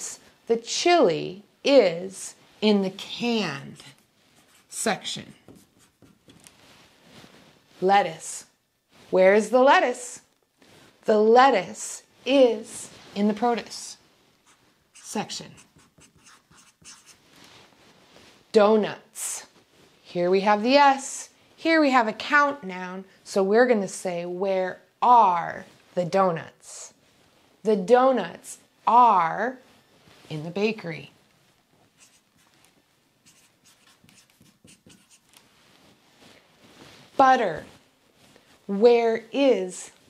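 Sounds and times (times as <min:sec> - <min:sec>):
marker pen scratching on board: 0:03.7 - 0:06.5, 0:14.4 - 0:17.2, 0:32.0 - 0:32.5, 0:33.2 - 0:35.4.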